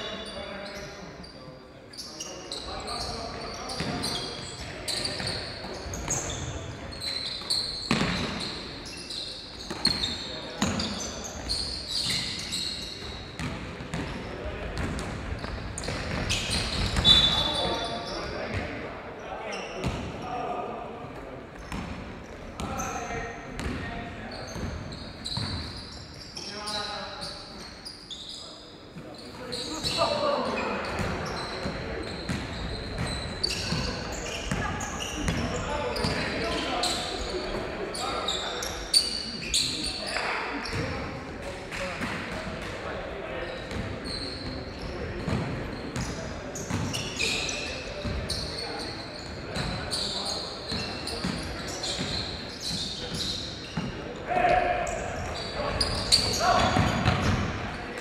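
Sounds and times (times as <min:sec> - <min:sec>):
sneaker squeaks: 0:00.0 - 0:20.3, 0:21.5 - 0:42.6, 0:43.4 - 0:58.0
players shouting: 0:54.2 - 0:55.1.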